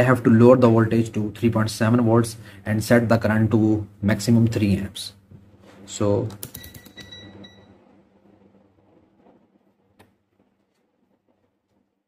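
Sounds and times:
faint ringing tone: 0:06.6 - 0:08.0.

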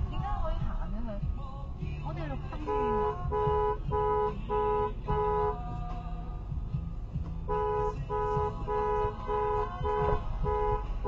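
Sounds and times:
two-note car horn beeps: 0:02.6 - 0:05.6, 0:07.5 - 0:11.0.

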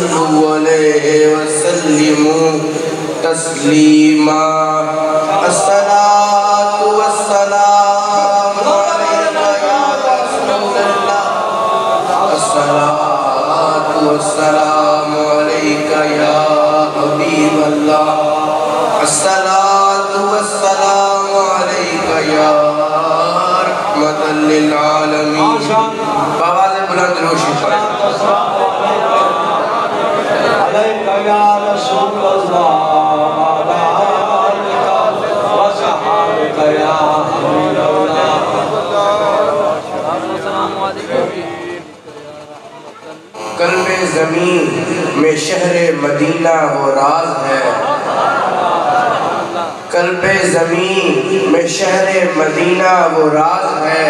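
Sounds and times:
man chanting into a microphone: 0:00.0 - 0:48.0, 0:49.7 - 0:54.0.

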